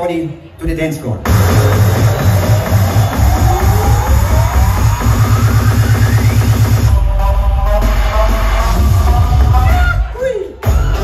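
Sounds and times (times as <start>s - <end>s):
electronic dance music: 1.2s - 11.0s
rising synth sweep: 1.3s - 9.4s
pulsing bass beat: 1.3s - 11.0s.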